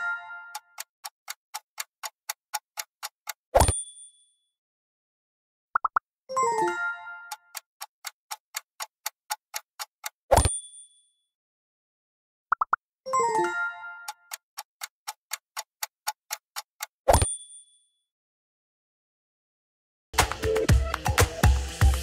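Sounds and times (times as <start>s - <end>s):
clock ticking: 0.0s - 3.8s, 7.3s - 10.6s, 14.1s - 17.3s.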